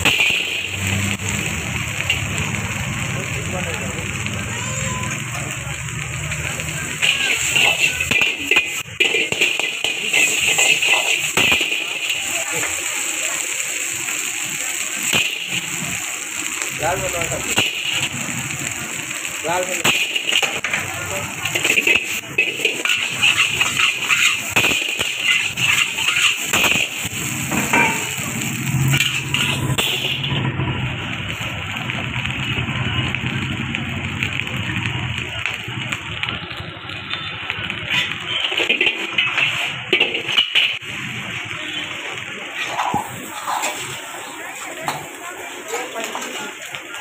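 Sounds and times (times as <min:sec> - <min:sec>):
gas burner hissing: 0:00.0 - 0:47.0
spatula scraping a wok: 0:06.5 - 0:13.1, 0:19.8 - 0:30.7, 0:37.7 - 0:40.8, 0:42.4 - 0:45.1.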